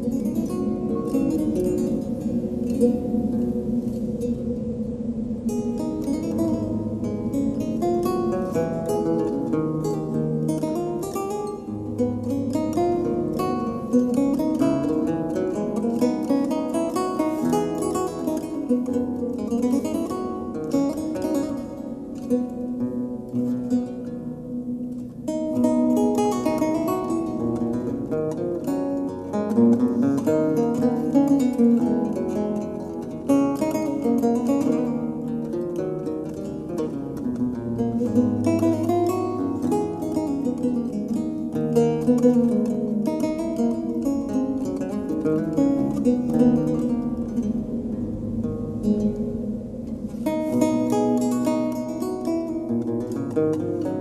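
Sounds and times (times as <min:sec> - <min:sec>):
plucked acoustic guitar music: 0:00.0 - 0:54.0.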